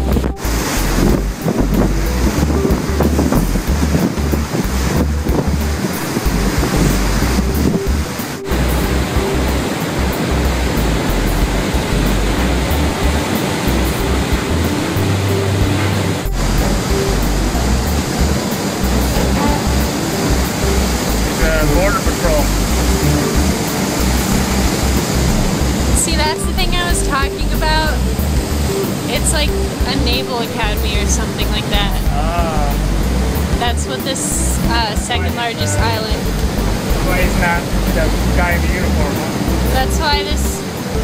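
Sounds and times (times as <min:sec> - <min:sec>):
water rushing past boat: 0:00.0 - 0:41.0
wind buffeting microphone: 0:00.0 - 0:41.0.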